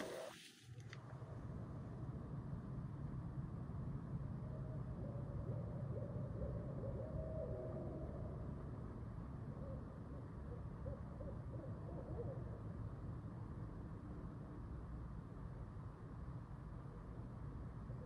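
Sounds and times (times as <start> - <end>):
distant wavering animal calls: 0.0 - 0.6, 4.4 - 13.1
low background rumble: 0.0 - 18.0.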